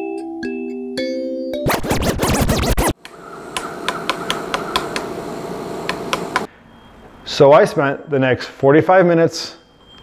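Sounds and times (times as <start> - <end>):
music: 0.0 - 2.6
record scratch: 1.7 - 3.0.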